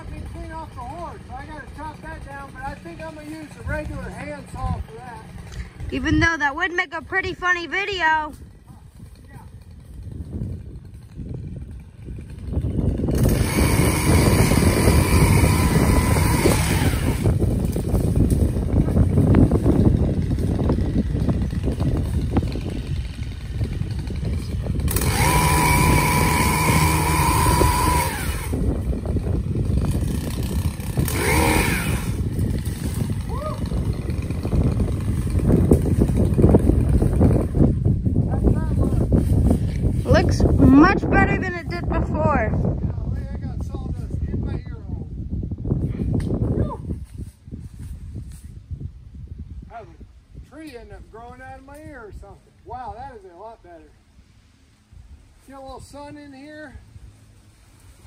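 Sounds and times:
high motor whine: 0.0 - 37.5
powered pole saw cutting: 0.0 - 37.8.

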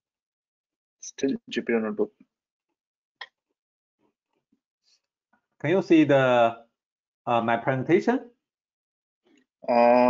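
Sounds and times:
spoken word: 5.8 - 6.5, 9.7 - 10.0.

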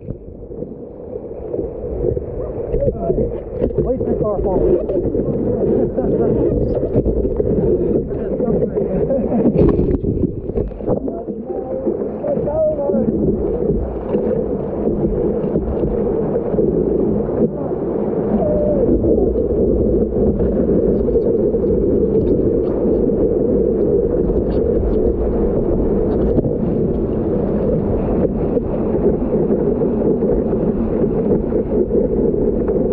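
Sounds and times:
surf water sloshing and splashing: 0.0 - 32.9.

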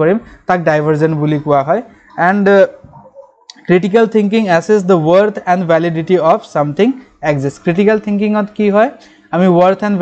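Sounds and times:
man lecturing: 0.0 - 2.9, 3.5 - 10.0.

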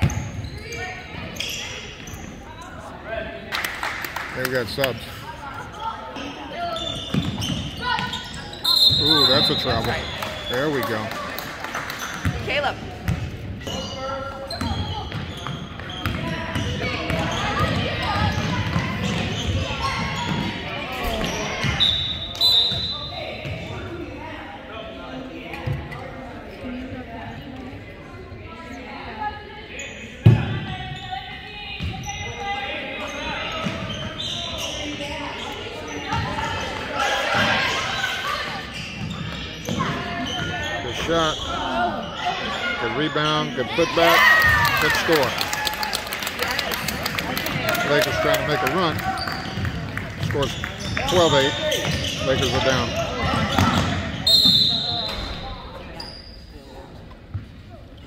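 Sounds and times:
spectators talking in echoing hall: 0.0 - 58.0.

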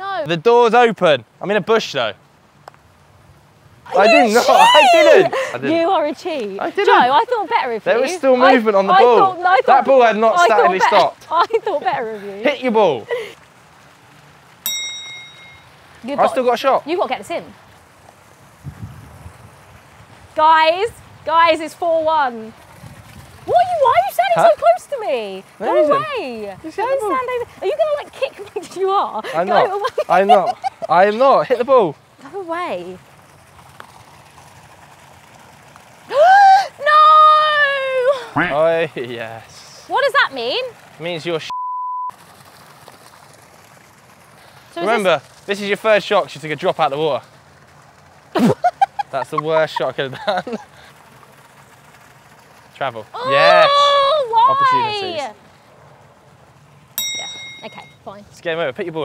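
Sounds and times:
outdoor background hiss: 0.0 - 41.5, 42.1 - 59.0
bright bell ding: 14.7 - 15.8, 57.0 - 58.1
censor bleep tone: 41.5 - 42.1.

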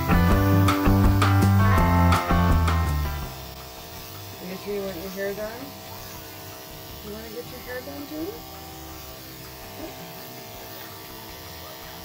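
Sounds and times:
electric pet clipper buzzing: 0.0 - 12.0.

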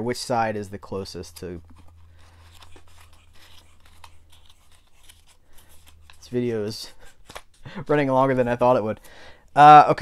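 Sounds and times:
paper rustling and crinkling: 1.2 - 7.7.

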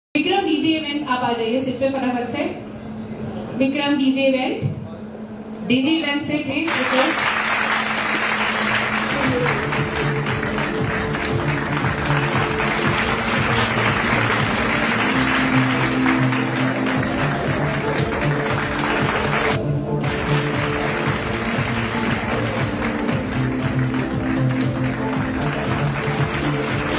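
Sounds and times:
audience applauding: 6.7 - 26.9
music with long held notes: 7.9 - 26.9.

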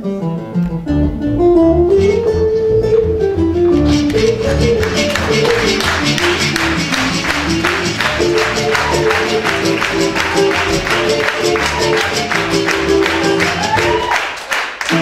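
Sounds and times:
live acoustic band music: 0.0 - 15.0.

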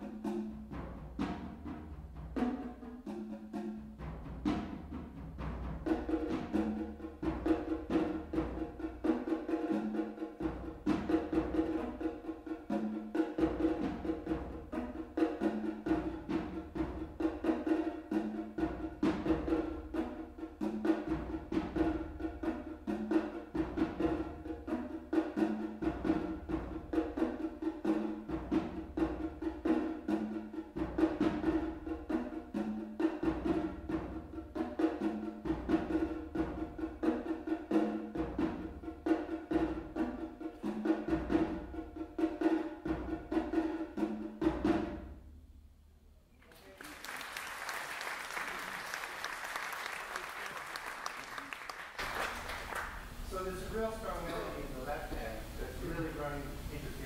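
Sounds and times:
conga drumming: 0.0 - 57.0.

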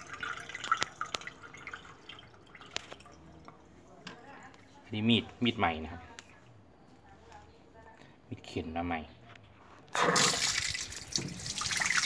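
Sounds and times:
water trickling into tray: 0.0 - 3.5, 10.2 - 12.0.

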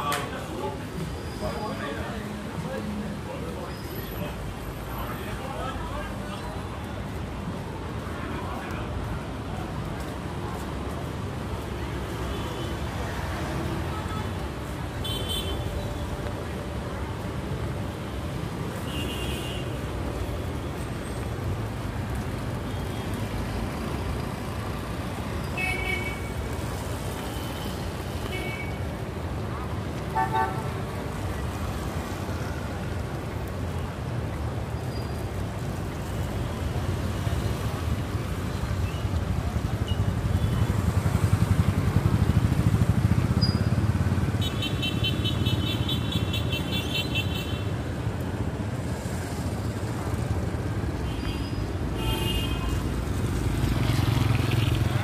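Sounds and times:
traffic on wet pavement: 0.0 - 55.0.

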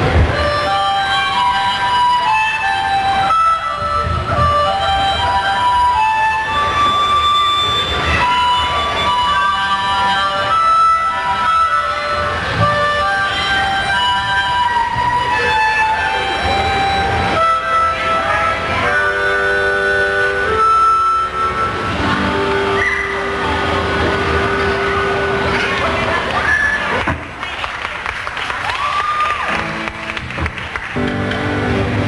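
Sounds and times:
amplified harmonica: 0.0 - 27.0.

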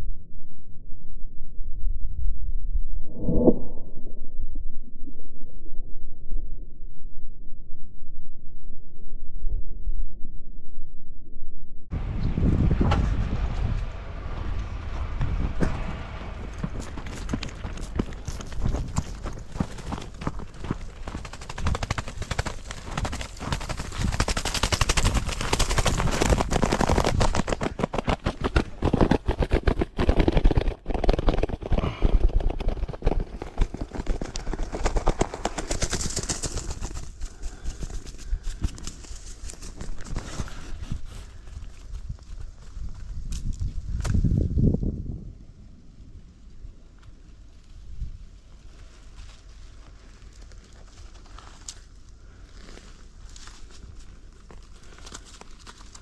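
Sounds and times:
bird wings flapping on ground: 12.0 - 44.6, 46.9 - 56.0
footsteps on dirt trail: 12.8 - 29.6, 48.7 - 56.0.

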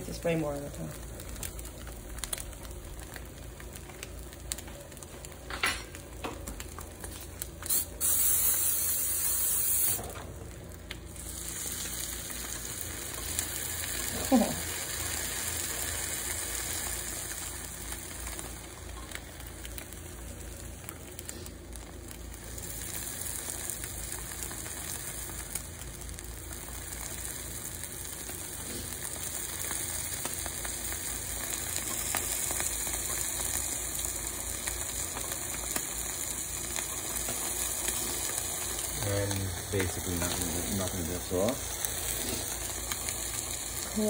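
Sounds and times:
eggs and cheese sizzling on grill: 0.0 - 44.0.

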